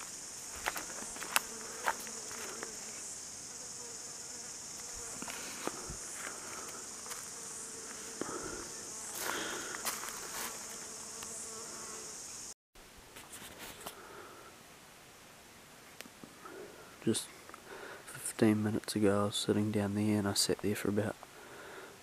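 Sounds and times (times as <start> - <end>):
high-pitched insect chorus: 0.0 - 12.6.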